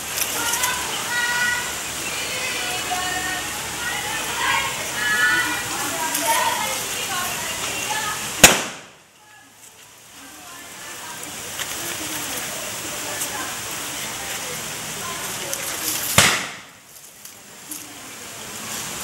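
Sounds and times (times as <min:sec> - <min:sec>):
faint voices: 0:00.0 - 0:19.0
steady hiss: 0:00.0 - 0:19.0
loud sharp bangs: 0:08.4 - 0:09.0, 0:16.1 - 0:16.8.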